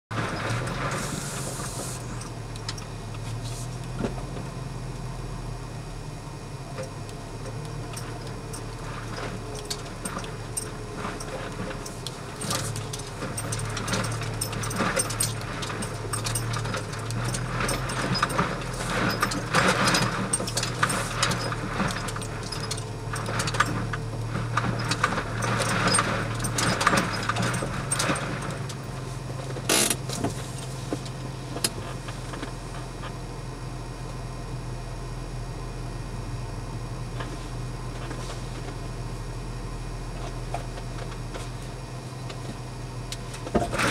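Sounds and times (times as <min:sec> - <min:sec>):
low engine drone: 0:00.1 - 0:43.9
interior clicks and rattles: 0:06.8 - 0:33.2, 0:40.1 - 0:43.9.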